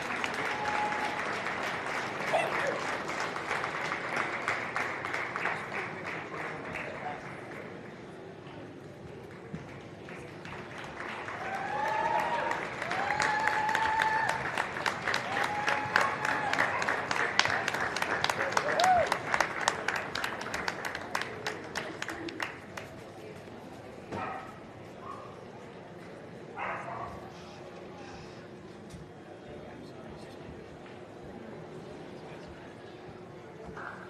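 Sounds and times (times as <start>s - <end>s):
audience applauding: 0.0s - 7.6s, 9.7s - 22.9s
cheering whoops: 0.2s - 1.4s, 11.3s - 14.6s, 15.2s - 16.8s, 18.5s - 19.2s.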